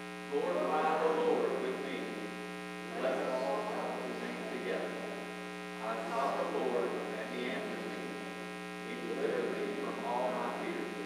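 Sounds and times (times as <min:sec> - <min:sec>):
electrical buzzing hum: 0:00.0 - 0:11.0
congregation reading aloud in unison: 0:00.3 - 0:02.3, 0:02.9 - 0:05.2, 0:05.8 - 0:08.2, 0:08.8 - 0:11.0.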